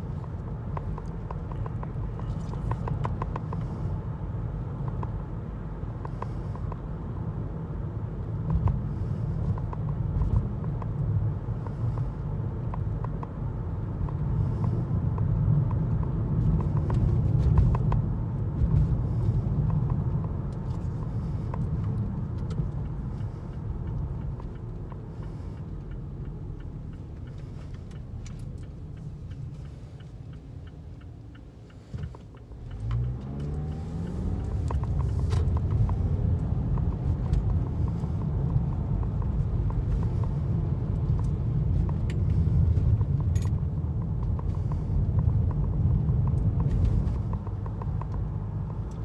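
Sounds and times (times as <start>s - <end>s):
tyre and engine rumble: 0.0s - 49.0s.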